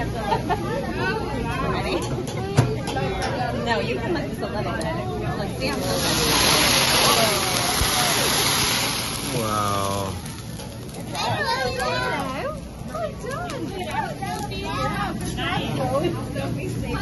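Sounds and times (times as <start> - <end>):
diners chatting: 0.0 - 17.0
flame hissing and sizzling on griddle: 5.6 - 12.3.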